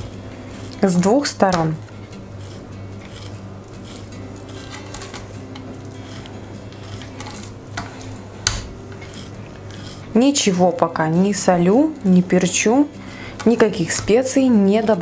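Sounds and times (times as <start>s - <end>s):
knife slicing meat: 0.0s - 10.5s
knife tapping wooden board: 8.4s - 8.7s.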